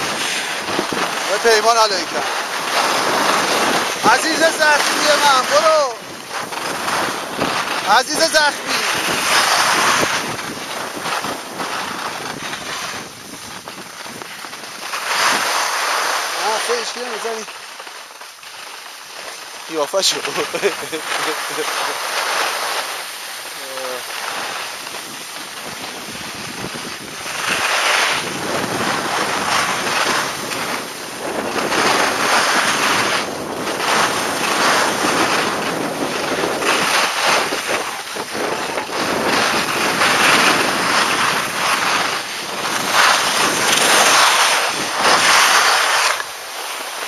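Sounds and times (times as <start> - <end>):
wind on microphone: 0.0 - 15.8, 22.8 - 47.0
skis scraping over snow: 0.0 - 47.0.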